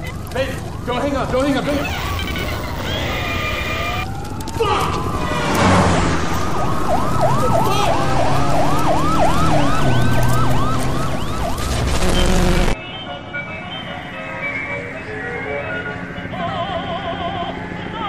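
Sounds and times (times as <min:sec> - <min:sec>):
police siren yelping: 0:00.0 - 0:05.6, 0:06.2 - 0:12.8
vehicle and road noise: 0:00.0 - 0:12.8.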